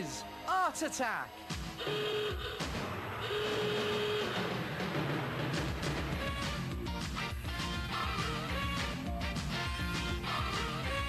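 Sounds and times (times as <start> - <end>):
electronic alarm tone: 1.8 - 4.6.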